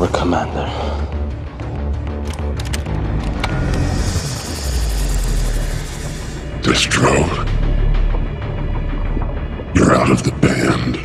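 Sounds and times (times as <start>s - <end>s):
sharp clicks: 2.0s - 5.4s
low steady drone: 3.0s - 10.3s.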